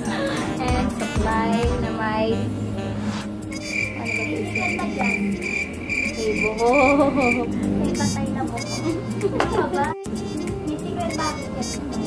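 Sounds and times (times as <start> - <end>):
quiet background music: 0.0 - 12.0
cricket chirping: 3.5 - 8.9
person speaking: 3.6 - 9.0.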